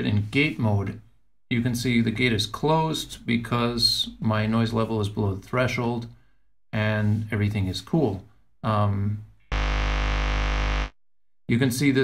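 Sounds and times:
distorted electric guitar hum: 9.5 - 11.0.

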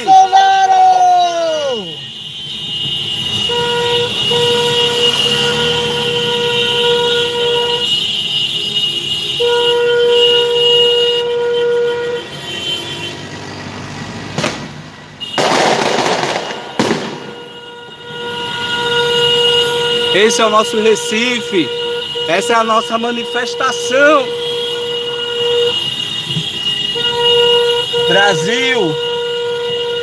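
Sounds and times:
car horn blasts: 0.0 - 13.3, 15.2 - 15.7, 16.4 - 30.0.

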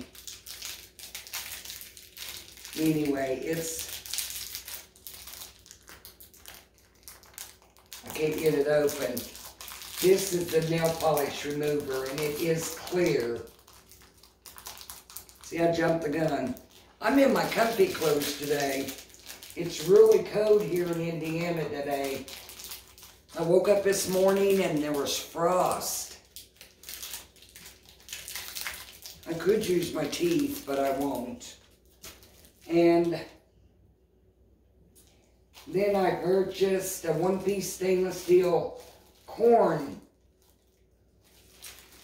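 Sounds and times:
package crinkling and clicking: 0.0 - 25.2, 26.0 - 32.7, 40.2 - 42.0.

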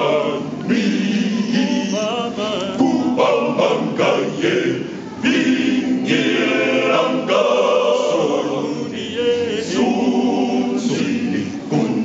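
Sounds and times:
men's choir singing: 0.0 - 12.0.

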